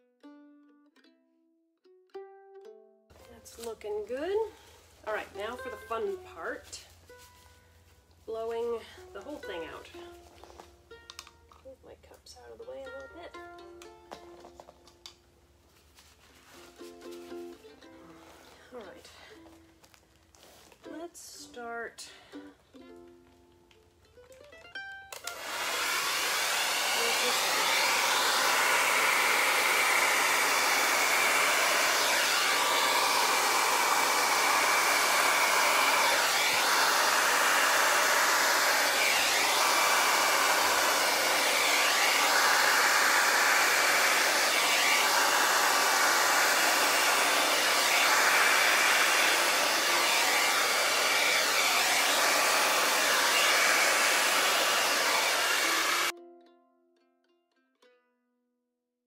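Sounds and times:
hair dryer blowing with high whine: 25.1s - 56.1s.

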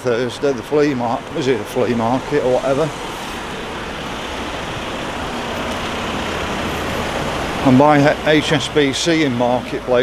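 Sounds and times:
road traffic passing: 0.0s - 10.0s
van drawing up: 0.0s - 10.0s.

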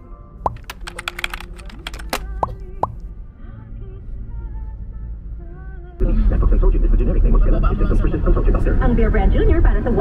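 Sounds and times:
keyboard typing clicks: 0.5s - 3.0s.

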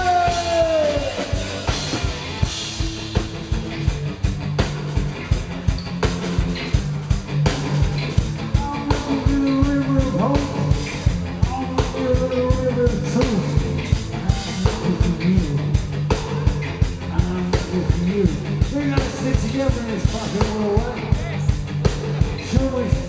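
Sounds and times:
electric guitars and bass: 0.0s - 23.0s
fast drum beat: 0.0s - 23.0s.

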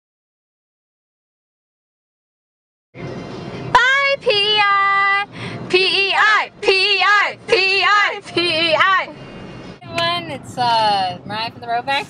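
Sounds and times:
car cabin road noise: 3.0s - 12.0s.

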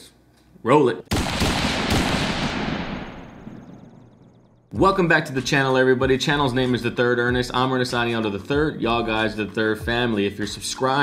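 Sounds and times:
explosion-like hit with low rumble: 1.1s - 4.3s.

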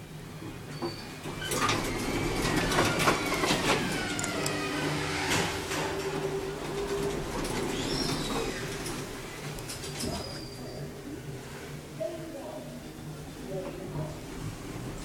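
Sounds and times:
elevator hum: 0.0s - 15.0s
elevator squeals: 0.7s - 5.5s, 7.6s - 8.9s, 10.0s - 10.9s
elevator clicks and rattles: 1.2s - 10.3s.

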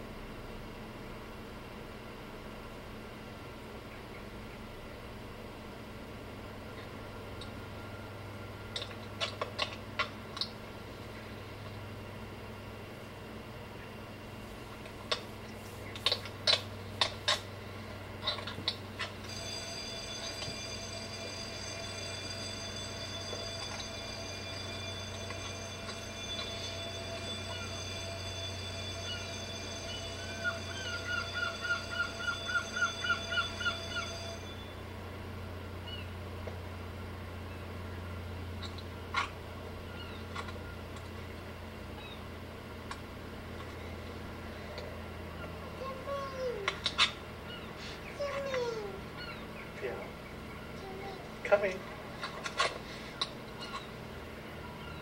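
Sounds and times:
electric school bell ringing: 18.9s - 35.6s.

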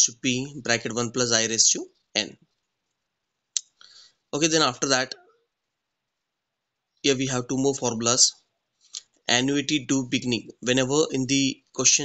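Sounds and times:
man's voice: 0.0s - 2.4s, 4.4s - 5.2s, 7.1s - 8.3s, 9.3s - 12.0s.

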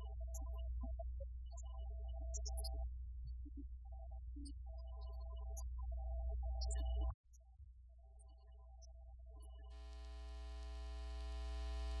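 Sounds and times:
buzzy electrical hum: 9.8s - 12.0s.

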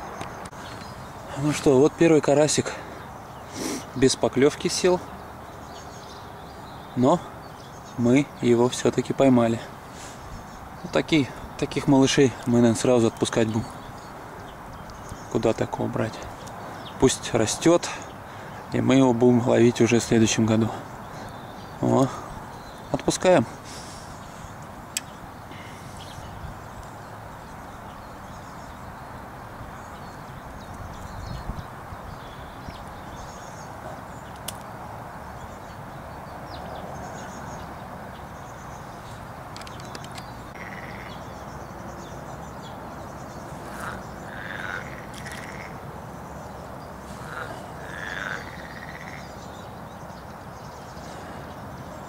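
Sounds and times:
outdoor background hiss: 0.0s - 52.0s
short animal calls: 40.5s - 41.2s, 43.7s - 45.7s, 47.1s - 49.2s.

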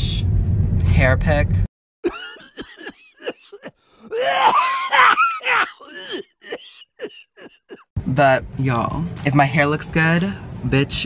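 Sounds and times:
man laughing loudly: 2.0s - 7.8s
man making vocal noises: 2.1s - 7.8s.

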